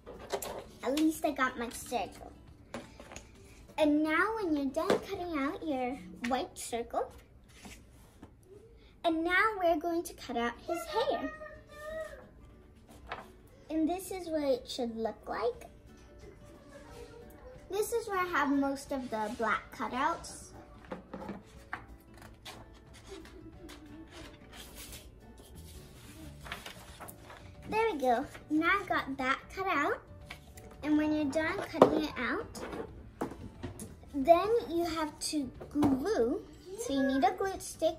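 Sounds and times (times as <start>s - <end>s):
faint background music: 0.0s - 37.9s
paper rustling: 12.8s - 13.4s, 21.4s - 28.6s.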